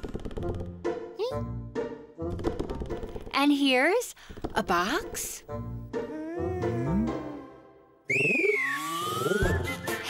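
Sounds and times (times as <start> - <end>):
playful cartoon music: 0.0 - 3.3, 4.7 - 10.0
sliding whistle-like tones: 8.1 - 10.0.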